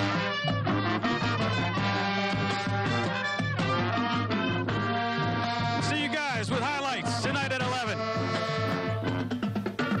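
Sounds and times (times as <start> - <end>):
marching band playing: 0.0 - 10.0
steady low drum beat: 1.7 - 10.0.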